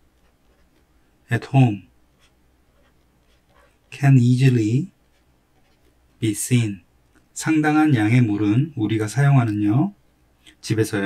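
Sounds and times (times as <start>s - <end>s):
stylus writing on a tablet: 0.0s - 6.5s.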